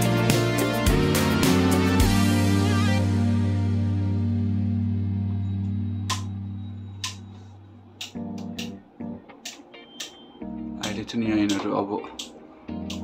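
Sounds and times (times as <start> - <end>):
background guitar music: 0.0 - 13.0
man talking: 10.8 - 12.3.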